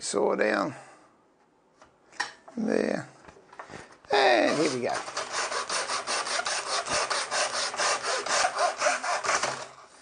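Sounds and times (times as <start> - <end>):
hand saw cutting timber: 4.3 - 9.9.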